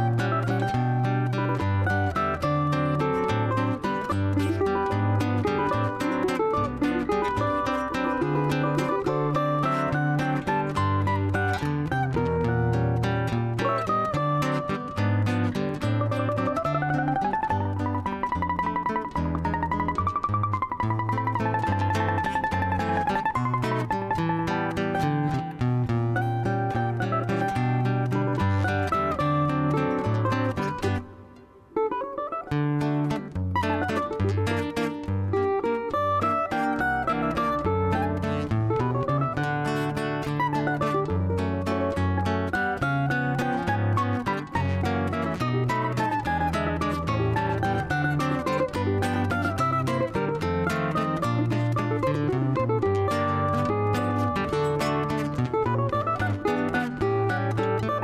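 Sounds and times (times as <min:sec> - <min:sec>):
acoustic guitar accompaniment: 0:00.0 - 0:58.0
cavaquinho playing melody: 0:00.0 - 0:58.0.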